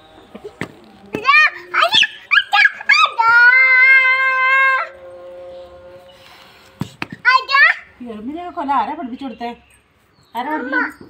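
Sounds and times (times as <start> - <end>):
high-pitched cries: 0.4 - 7.9.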